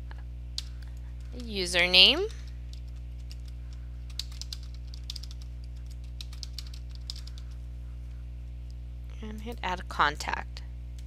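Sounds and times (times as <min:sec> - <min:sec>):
steady low hum: 0:00.0 - 0:11.0
keyboard keys clicking: 0:01.4 - 0:07.6.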